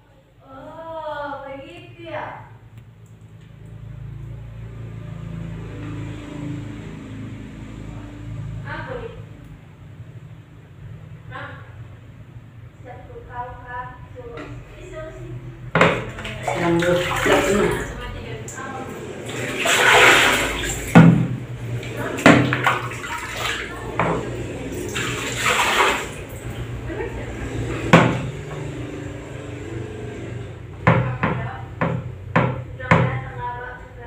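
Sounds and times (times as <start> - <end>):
sharp knocks: 15.7 - 16.2, 20.9 - 21.4, 27.8 - 28.7, 30.8 - 33.2
water splashing: 15.8 - 30.2.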